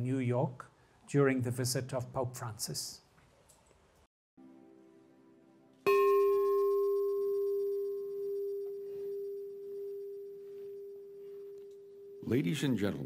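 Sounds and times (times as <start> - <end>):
large bell ringing: 5.9 - 13.0.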